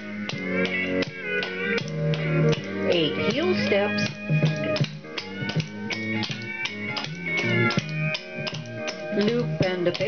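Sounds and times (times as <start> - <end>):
country tune with guitar: 0.0 - 10.0
clogging taps on wooden floor: 0.2 - 10.0.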